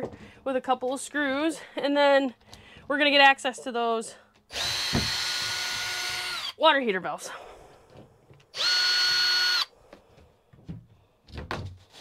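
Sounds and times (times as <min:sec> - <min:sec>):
cordless drill running: 0:04.5 - 0:06.6, 0:08.5 - 0:09.7.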